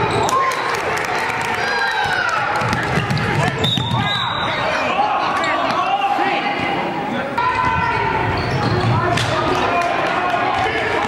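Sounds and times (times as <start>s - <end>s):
basketball bouncing: 2.0s - 4.1s
sneakers squeaking on hardwood: 7.6s - 9.2s.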